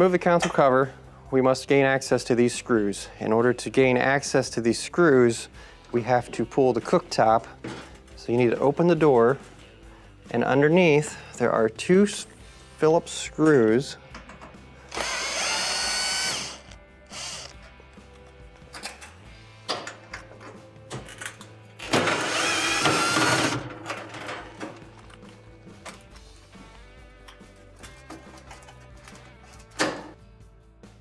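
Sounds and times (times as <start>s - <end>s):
cordless drill whining: 14.9s - 17.6s, 22.2s - 23.6s.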